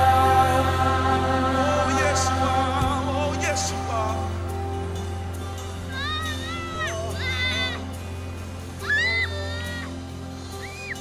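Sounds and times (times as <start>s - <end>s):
background music: 0.0s - 11.0s
child calling: 5.9s - 7.9s, 8.8s - 9.9s.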